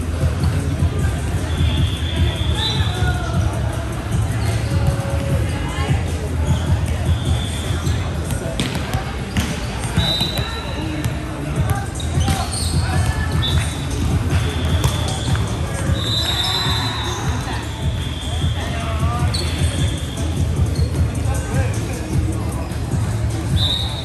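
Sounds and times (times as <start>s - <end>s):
background chatter: 0.0s - 24.0s
low hum of hall: 0.0s - 24.0s
music: 0.0s - 24.0s
sneakers squeaking on floor: 6.5s - 21.2s
volleyballs hit and bouncing: 8.0s - 16.0s.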